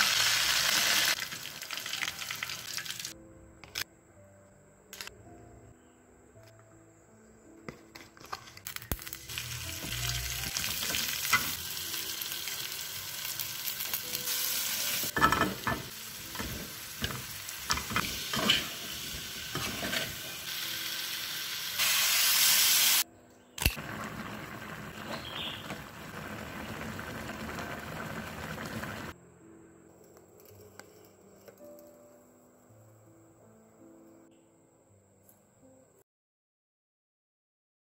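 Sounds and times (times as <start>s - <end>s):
food sizzling in a wok: 0.0s - 3.2s, 8.7s - 23.0s, 23.6s - 29.2s
faint music: 1.1s - 25.4s, 26.9s - 36.0s.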